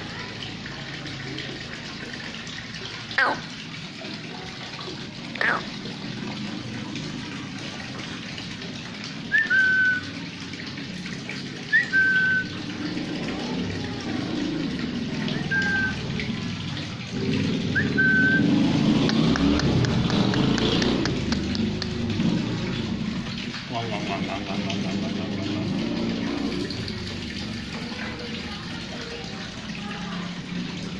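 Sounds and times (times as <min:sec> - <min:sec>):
rushing water: 0:00.0 - 0:30.9
person whistling calls: 0:09.3 - 0:10.1, 0:11.7 - 0:12.6, 0:15.4 - 0:16.0, 0:17.8 - 0:18.6.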